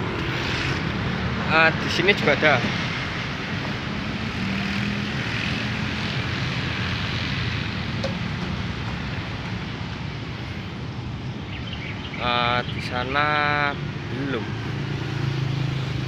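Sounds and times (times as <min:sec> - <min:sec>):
engine drone with low hum: 0:02.9 - 0:12.8.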